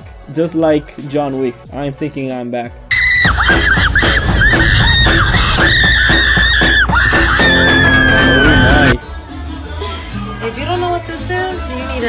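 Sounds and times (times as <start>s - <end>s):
music: 0.0s - 12.0s
women screaming: 2.9s - 9.0s.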